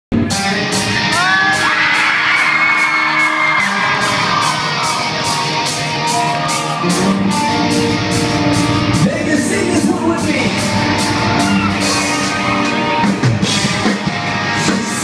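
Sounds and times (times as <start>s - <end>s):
drums: 0.1s - 15.0s
electric guitars: 0.2s - 15.0s.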